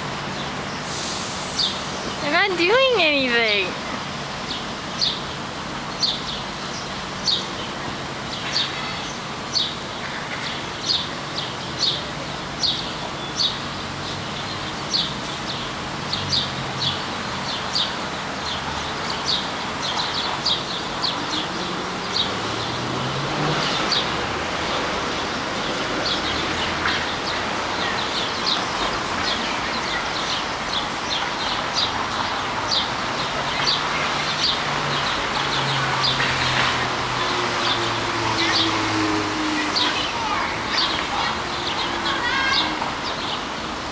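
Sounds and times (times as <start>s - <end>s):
sparrows chirping: 1.5s - 43.6s.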